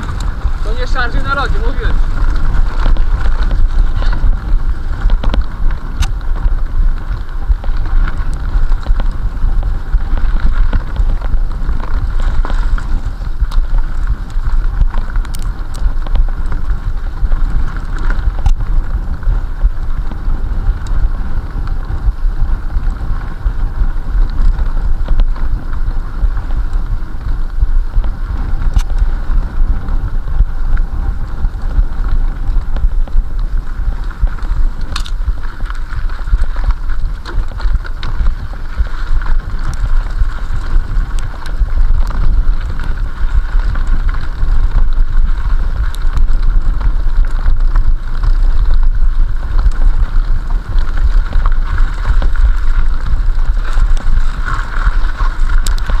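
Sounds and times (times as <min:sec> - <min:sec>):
bike clicks and rattles: 0:00.0 - 0:56.0
tyres rolling on dirt: 0:00.0 - 0:56.0
wind buffeting microphone: 0:00.0 - 0:56.0.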